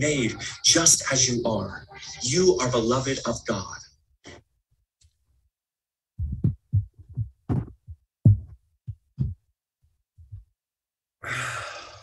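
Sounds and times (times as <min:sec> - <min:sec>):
short low thuds: 0:06.2 - 0:09.4.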